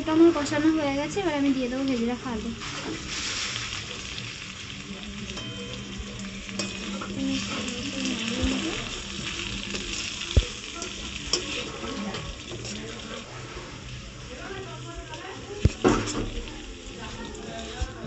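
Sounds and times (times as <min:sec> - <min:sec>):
food sizzling in hot oil: 0:00.0 - 0:18.0
metal spatula stirring: 0:05.3 - 0:13.8.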